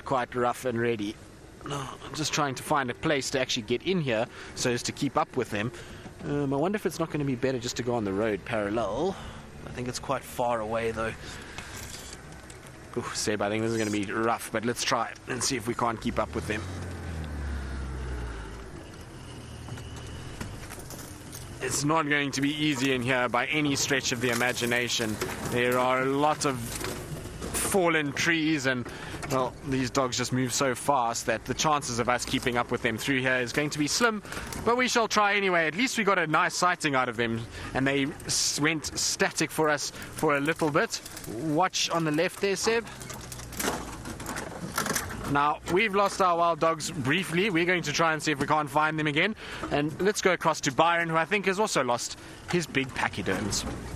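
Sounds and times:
vehicle engine driving off-road: 0.0s - 53.9s.

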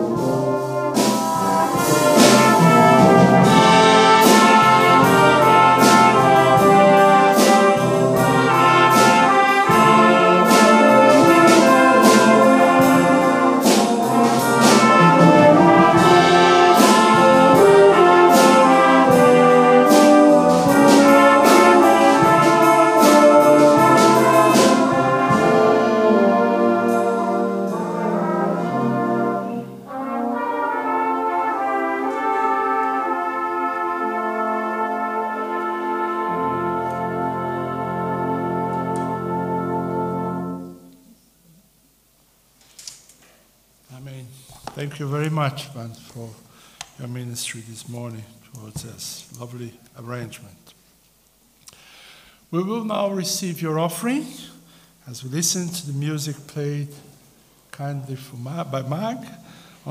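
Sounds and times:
percussion hits: 0.0s - 29.0s
brass band playing: 0.0s - 42.2s, 52.4s - 59.9s.

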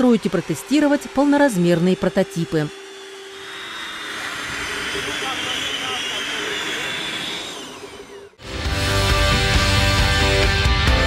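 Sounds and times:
rotors rushing with high whine: 0.0s - 10.6s.

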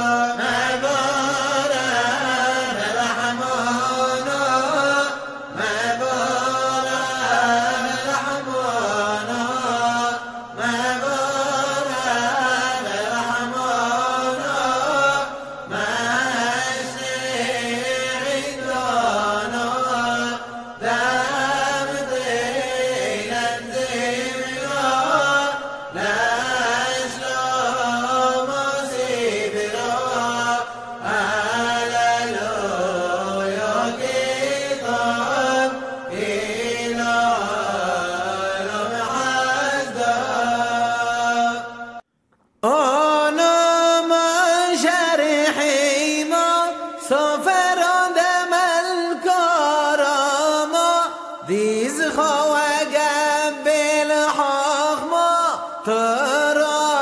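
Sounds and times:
man chanting: 0.0s - 42.0s, 42.6s - 57.0s.

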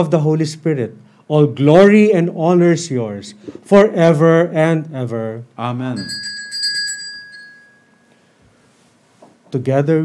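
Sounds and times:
small bell ringing: 6.0s - 8.2s.

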